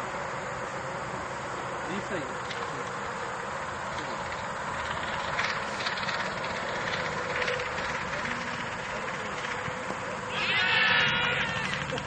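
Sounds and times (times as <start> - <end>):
faint distant voices: 6.8 - 12.0
loud high-pitched cry: 10.3 - 12.0.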